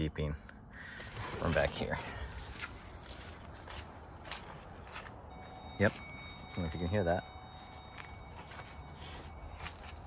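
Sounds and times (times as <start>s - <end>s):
footsteps on leaf-covered dirt: 1.2s - 6.7s, 7.5s - 10.0s.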